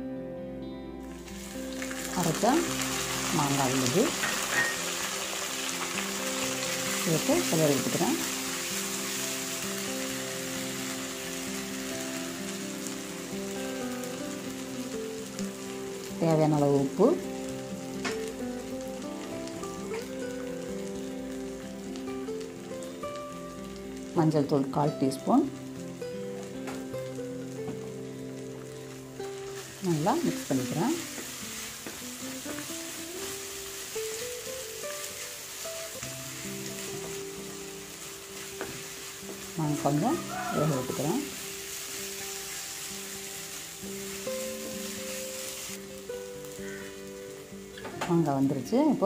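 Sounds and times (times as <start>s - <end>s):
soft instrumental music: 0.0s - 49.0s
food sizzling in hot oil: 1.0s - 49.0s.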